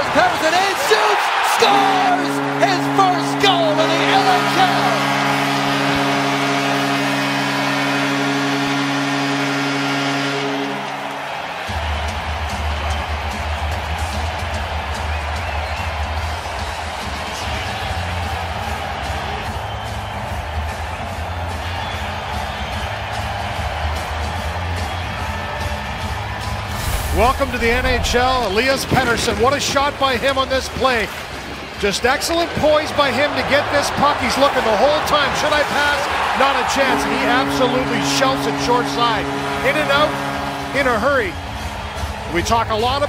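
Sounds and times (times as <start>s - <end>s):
arena goal horn: 0.0s - 12.1s, 26.7s - 29.0s, 32.8s - 42.5s
crowd cheering: 0.0s - 43.0s.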